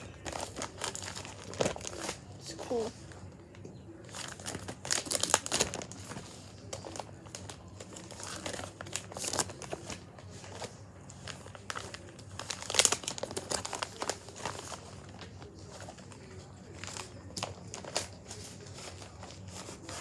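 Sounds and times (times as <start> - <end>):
plastic binder pages crinkling: 0.0 - 2.8, 4.1 - 20.0.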